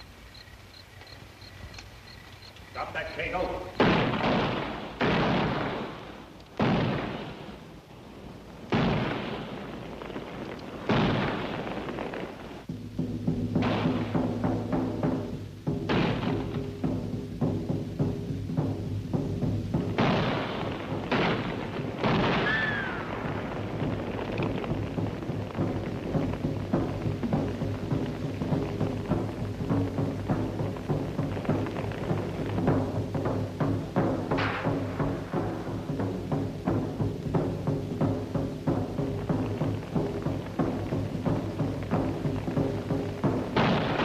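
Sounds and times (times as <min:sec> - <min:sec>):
heavy timpani: 0:10.8 - 0:44.0.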